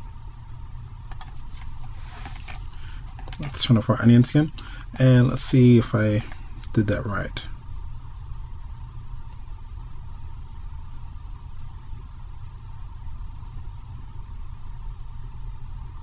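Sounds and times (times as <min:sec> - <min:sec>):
low hum with faint hiss: 0:00.0 - 0:16.0.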